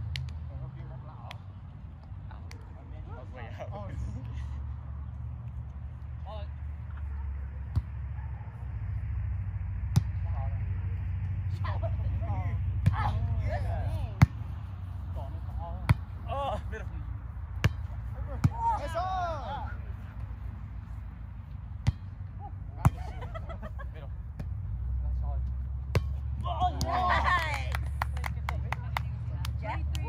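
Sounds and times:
players calling out: 17.8s - 20.4s
volleyball slaps: 25.8s - 27.9s.

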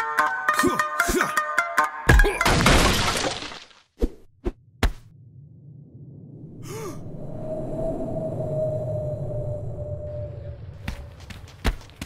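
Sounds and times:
crashing breaking noise: 2.4s - 3.9s.

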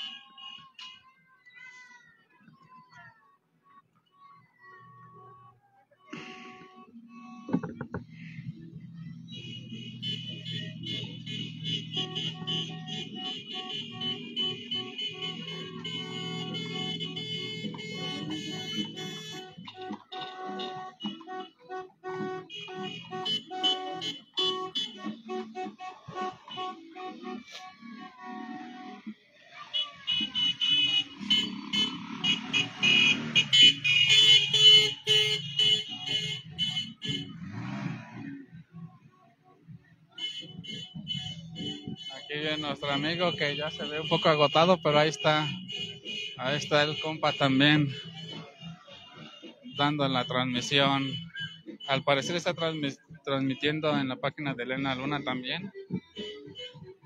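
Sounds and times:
music with a steady beat: 6.9s - 31.3s, 38.6s - 42.3s.

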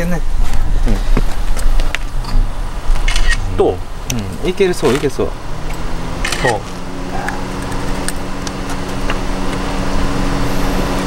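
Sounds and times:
engine idling hum: 0.2s - 11.0s.

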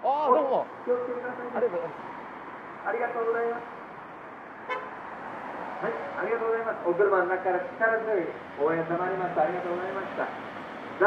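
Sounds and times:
low traffic noise: 0.0s - 11.0s
car horn toot: 4.7s - 4.9s.

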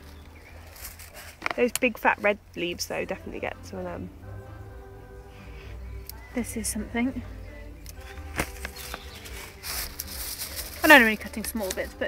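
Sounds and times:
plastic bag rustling: 0.0s - 1.7s, 8.0s - 12.0s.

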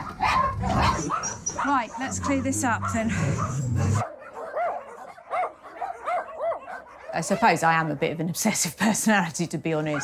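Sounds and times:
dog whining: 0.0s - 7.5s.

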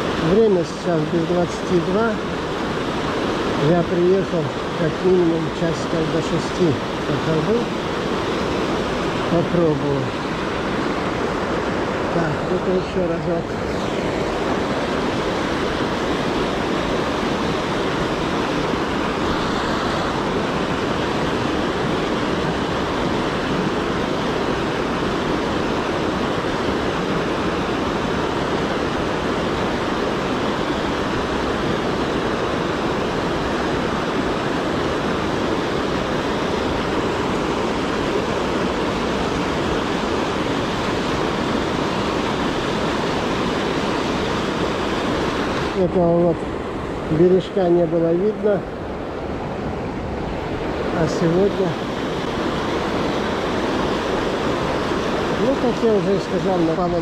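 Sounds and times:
water rushing over weir: 0.0s - 57.0s.

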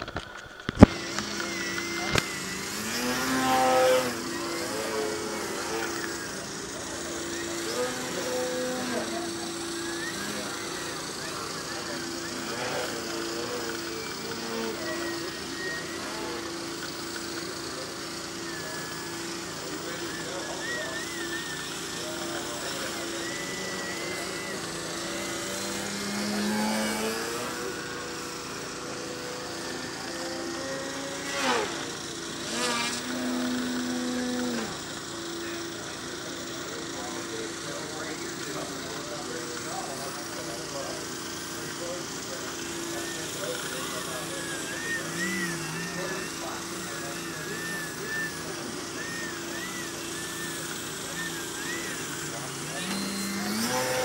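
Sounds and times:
model plane motor buzzing: 0.0s - 54.0s.

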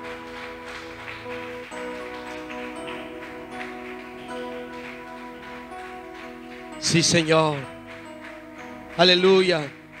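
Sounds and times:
electric keyboard chords: 0.0s - 10.0s.

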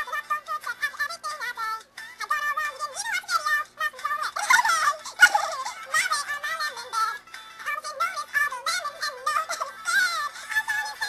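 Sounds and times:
girl singing warbling: 0.0s - 11.0s.

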